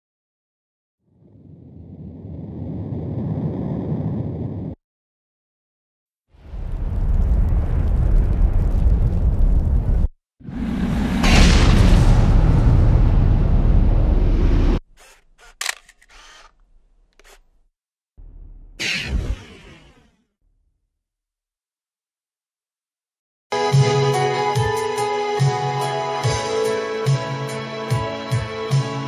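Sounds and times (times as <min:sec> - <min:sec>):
deep rumbling boom: 0:06.5 - 0:14.8
short clicks: 0:15.0 - 0:17.5.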